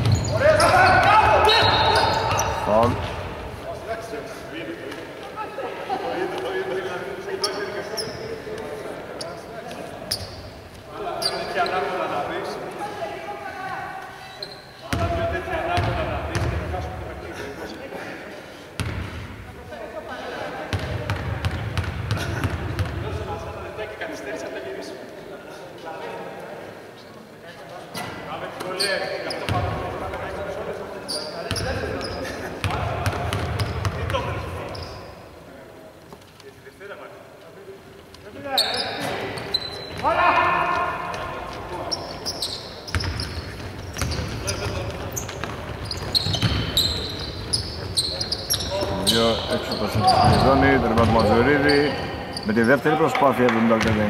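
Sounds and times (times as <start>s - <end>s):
players shouting: 0.1s - 3.1s, 40.0s - 41.7s.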